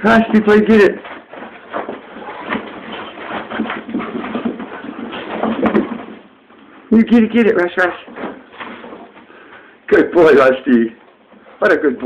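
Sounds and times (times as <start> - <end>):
dogs scuffling and bumping: 0.0 - 9.7
rough dog noises: 0.9 - 6.5.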